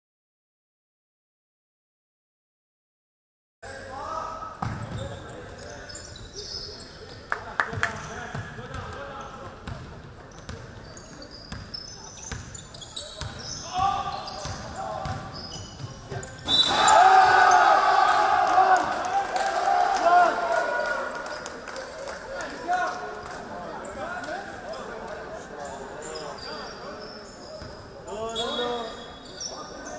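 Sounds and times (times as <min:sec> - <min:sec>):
sneakers squeaking: 0:04.5 - 0:17.7, 0:24.7 - 0:29.9
loud shouting: 0:16.5 - 0:21.2.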